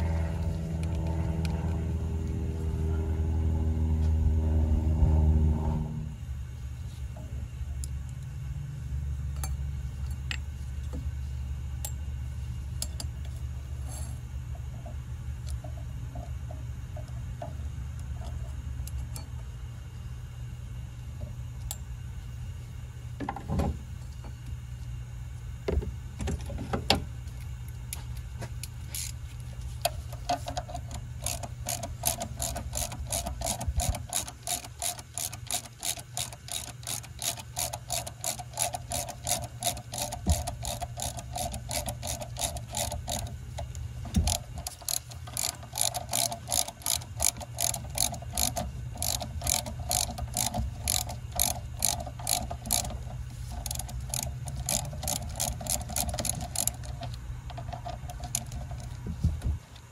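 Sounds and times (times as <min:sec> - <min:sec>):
steady low hum: 0:00.0 - 0:59.9
hand ratchet clicking: 0:30.2 - 0:59.0.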